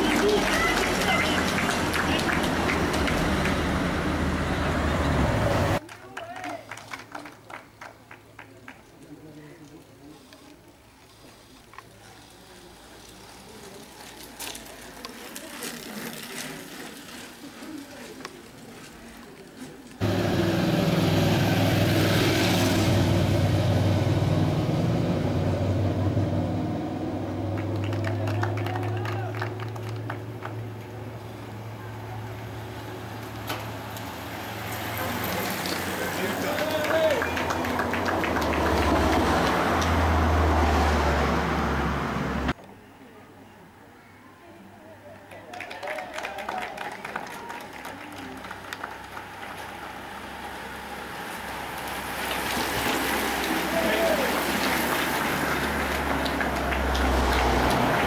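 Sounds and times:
voices: 0:00.0 - 0:20.1, 0:27.3 - 0:40.0, 0:51.9 - 0:58.0
faint outdoor ambience: 0:00.0 - 0:58.0
vehicle engine running loud: 0:20.0 - 0:28.6.

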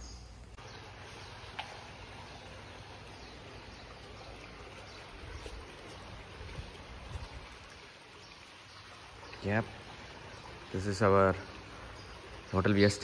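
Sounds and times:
fountain water splashing: 0:00.6 - 0:13.0.

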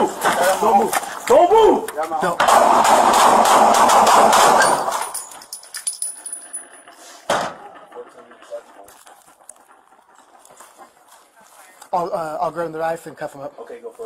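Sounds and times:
rapid handgun shots: 0:02.2 - 0:05.2.

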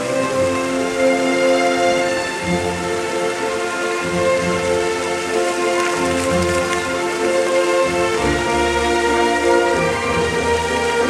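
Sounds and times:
fountain jets splashing into pool: 0:00.0 - 0:11.0
orchestral music with held chords: 0:00.0 - 0:11.0.

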